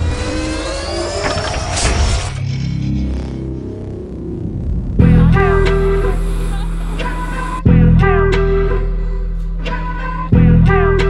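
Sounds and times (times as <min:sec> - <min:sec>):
rising tones: 0:00.0 - 0:08.4.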